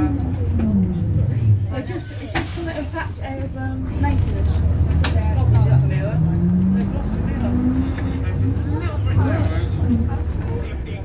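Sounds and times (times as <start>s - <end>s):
bus diesel engine: 0.0s - 11.0s.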